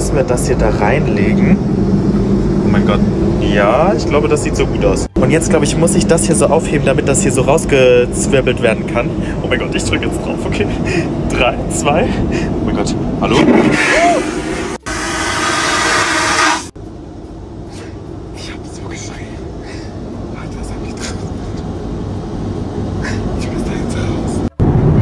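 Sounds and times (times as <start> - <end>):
aircraft cabin drone: 0.0 - 25.0
vacuum toilet flushing whoosh: 13.2 - 16.7.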